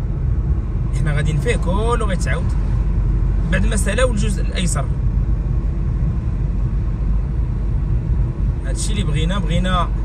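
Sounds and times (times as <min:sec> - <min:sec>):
car interior road rumble: 0:00.0 - 0:10.0.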